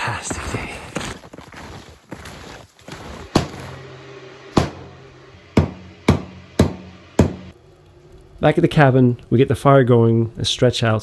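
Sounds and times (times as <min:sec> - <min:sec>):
wood splitting knocks: 0:03.3 - 0:03.7.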